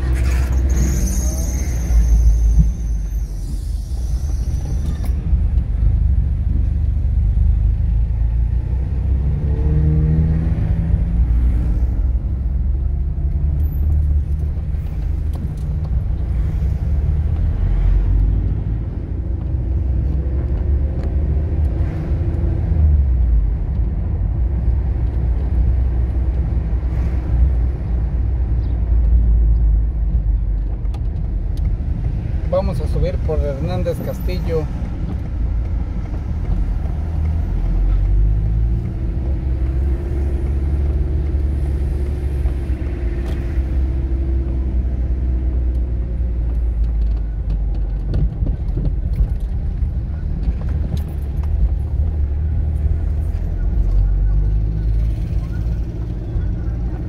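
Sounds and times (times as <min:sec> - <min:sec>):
car engine and road rumble: 0:00.0 - 0:57.0.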